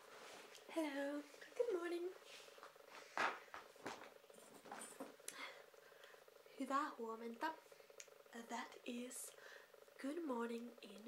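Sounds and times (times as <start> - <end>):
faint steady buzz: 0.0 - 11.0
woman's wordless voiced sounds: 0.7 - 2.2.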